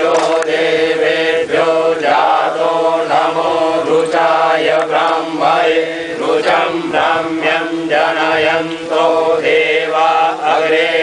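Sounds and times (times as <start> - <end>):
voices chanting mantras: 0.0 - 11.0.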